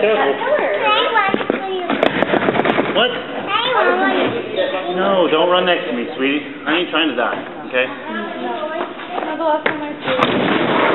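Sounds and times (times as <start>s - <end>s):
child's voice: 0.8s - 2.1s, 3.5s - 4.4s.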